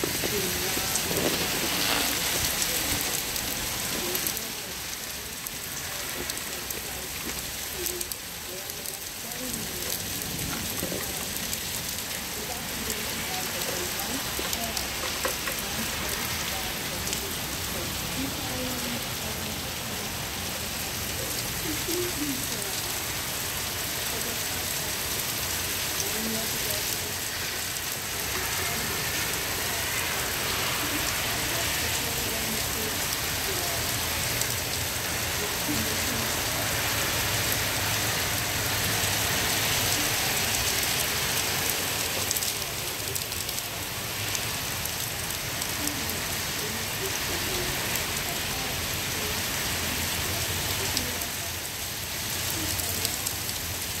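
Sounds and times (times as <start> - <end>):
raindrops ticking on surfaces: 0.0 - 54.0
steady rain falling: 0.0 - 54.0.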